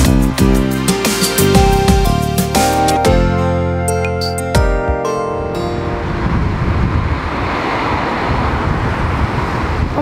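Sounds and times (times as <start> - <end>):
theme tune music: 0.0 - 7.8
wind buffeting microphone: 5.4 - 10.0.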